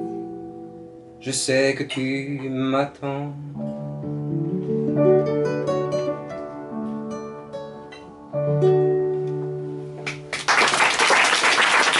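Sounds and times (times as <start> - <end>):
acoustic guitar picking: 0.0 - 10.3.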